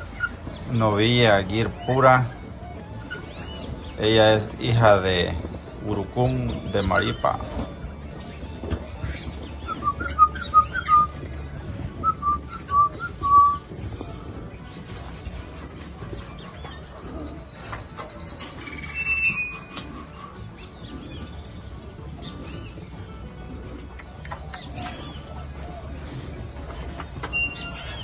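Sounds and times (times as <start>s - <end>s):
bird rapid trilling song: 0.0s - 7.7s, 14.6s - 25.4s
birds whistling short notes: 9.0s - 11.3s, 14.7s - 23.0s, 26.9s - 28.0s.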